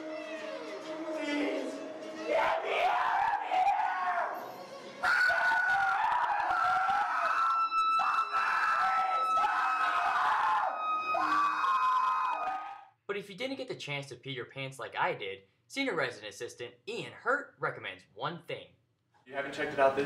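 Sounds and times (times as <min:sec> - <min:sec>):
high-pitched screams: 0:00.0 - 0:04.4, 0:05.0 - 0:12.9.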